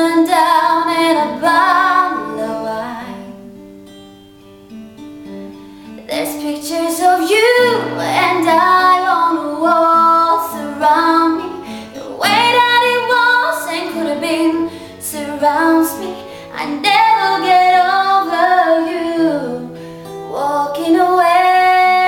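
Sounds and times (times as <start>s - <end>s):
woman singing a slow ballad: 0.0s - 3.5s, 6.0s - 22.0s
acoustic guitar chords: 0.0s - 22.0s.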